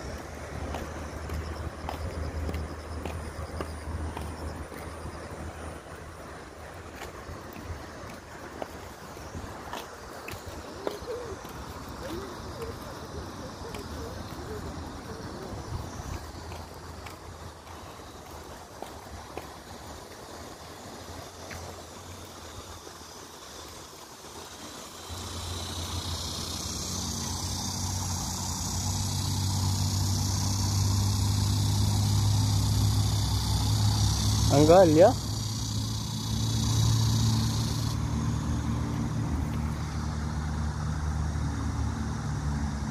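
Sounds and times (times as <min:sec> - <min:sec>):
vehicle engine humming: 0:00.0 - 0:42.9.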